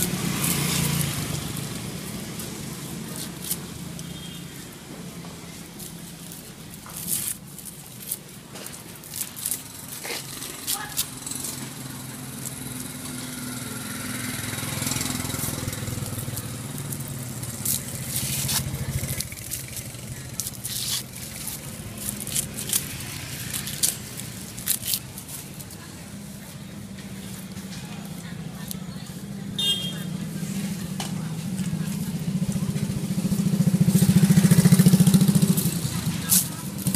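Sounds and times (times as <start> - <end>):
corn husks clicking and rustling: 0.0 - 13.4, 14.0 - 29.4, 30.6 - 36.9
passing motor traffic: 0.0 - 36.9.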